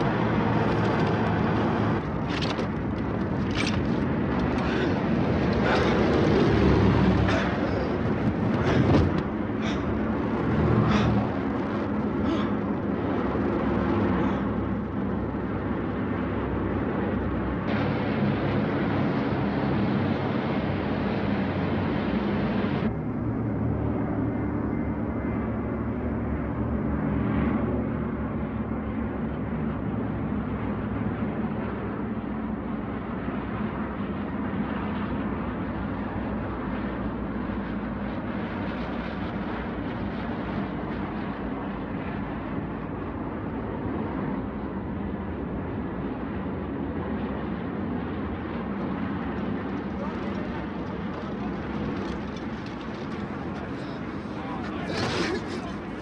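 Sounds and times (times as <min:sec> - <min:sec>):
propeller planes droning overhead: 0:00.0 - 0:56.0.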